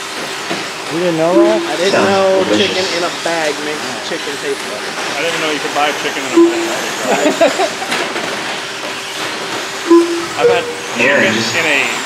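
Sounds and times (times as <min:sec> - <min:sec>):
short tone: 0:01.3 - 0:03.0, 0:06.4 - 0:07.1, 0:09.9 - 0:11.5.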